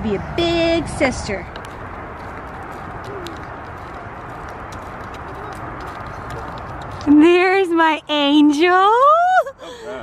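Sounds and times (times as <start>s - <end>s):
outdoor background noise: 0.0s - 10.0s
light footsteps on concrete: 1.2s - 7.9s.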